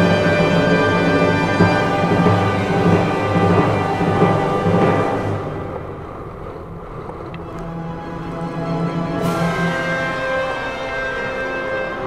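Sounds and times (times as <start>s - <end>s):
background music with held tones: 0.0s - 6.2s, 7.4s - 12.0s.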